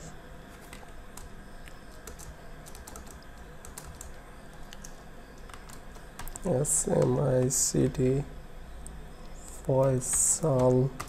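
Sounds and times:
keyboard keys clicking: 2.0 - 7.6, 9.8 - 11.0.

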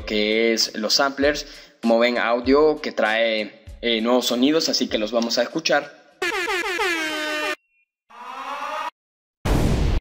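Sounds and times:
air horn blast falling in pitch: 6.2 - 7.6
siren-like tone: 6.2 - 9.0
loud explosion: 9.5 - 10.0.

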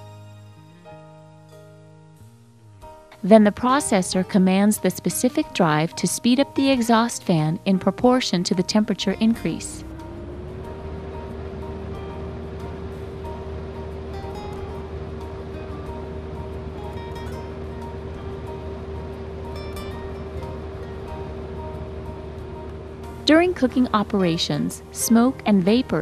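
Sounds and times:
background music: 0.0 - 26.0
exhaust fan hum: 2.6 - 26.0.

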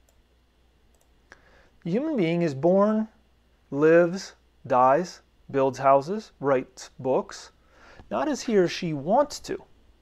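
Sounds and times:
computer mouse clicks: 0.9 - 1.2
person speaking: 1.8 - 9.8.

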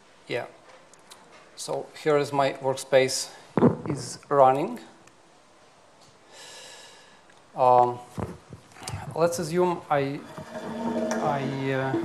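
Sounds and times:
person breathing in: 6.3 - 7.3.

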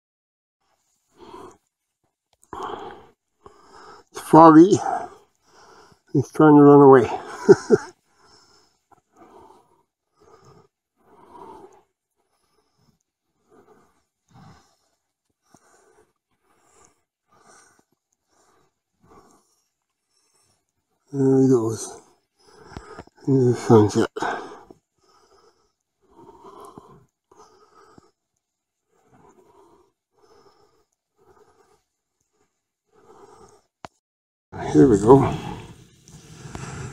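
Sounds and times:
faint soft breath: 2.5 - 4.1, 8.1 - 21.1, 21.9 - 33.8, 34.6 - 36.9.

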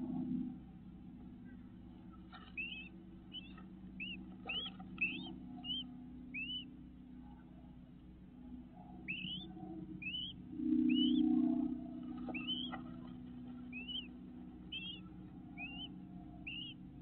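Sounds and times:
low hum: 0.0 - 17.0
bird whistling call: 2.5 - 6.7, 9.0 - 16.8.

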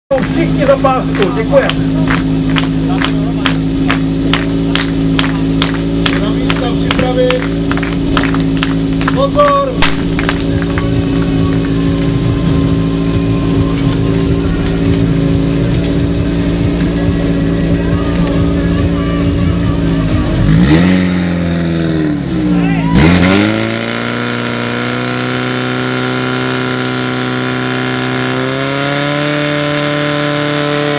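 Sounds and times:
pump engine running: 0.1 - 21.8.

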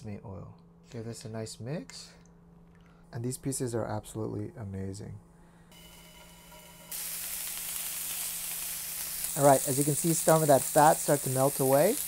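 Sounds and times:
meat sizzling in a frying pan: 5.8 - 12.0.

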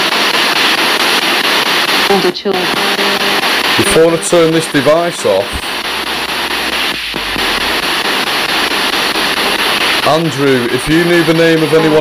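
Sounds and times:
radio static hiss: 0.0 - 12.0
rapid tuner ticks: 0.2 - 12.0.

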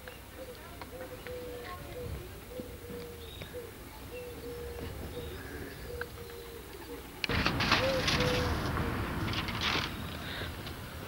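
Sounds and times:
dove cooing: 0.3 - 9.3
loud rustling: 7.3 - 10.6.

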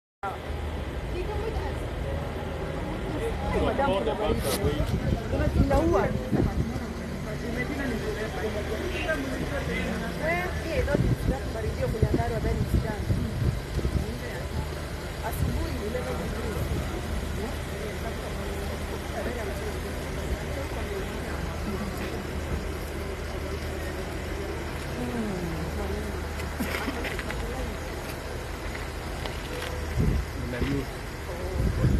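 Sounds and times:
low engine hum: 0.2 - 31.9
people talking: 0.3 - 31.9.

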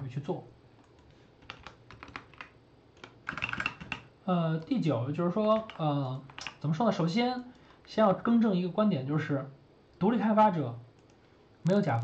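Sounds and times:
computer keyboard key clicks: 0.8 - 4.1.

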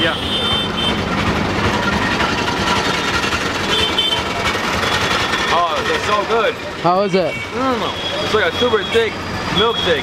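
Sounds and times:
vehicle engines: 0.0 - 10.0.

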